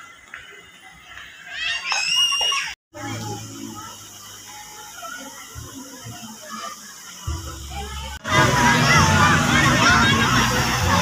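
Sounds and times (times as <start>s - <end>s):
steady background noise: 0.0s - 11.0s
high-pitched scream: 1.6s - 2.8s.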